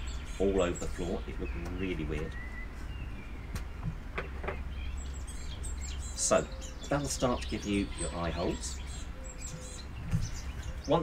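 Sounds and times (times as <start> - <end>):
birds chirping: 0.0 - 11.0
low steady hum: 0.0 - 11.0.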